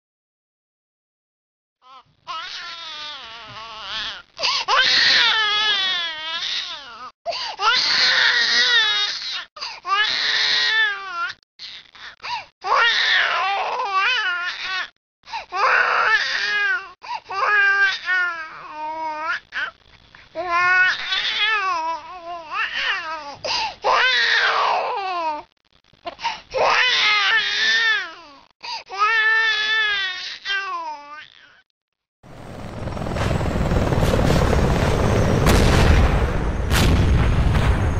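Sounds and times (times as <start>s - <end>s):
infant crying: 1.8s - 14.9s, 15.5s - 19.7s, 20.4s - 25.5s, 26.5s - 31.6s.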